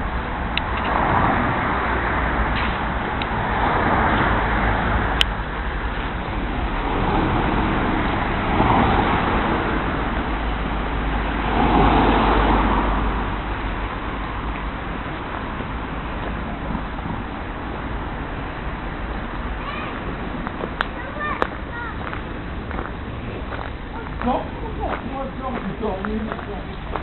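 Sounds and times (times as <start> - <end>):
vehicles passing: 0.0 - 27.0.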